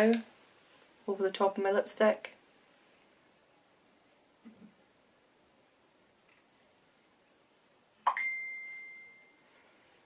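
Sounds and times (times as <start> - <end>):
electronic ding: 8.1 - 9.4.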